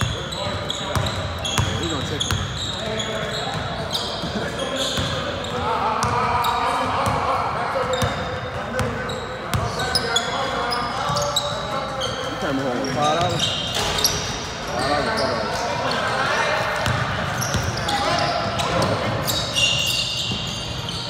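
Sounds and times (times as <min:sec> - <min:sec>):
sneaker squeaks on hardwood: 0:00.0 - 0:05.6, 0:07.9 - 0:15.7, 0:16.8 - 0:21.0.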